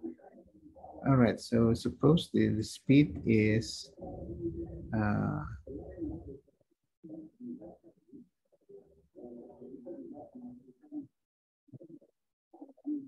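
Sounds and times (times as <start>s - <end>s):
bird cooing: 4.0s - 6.4s.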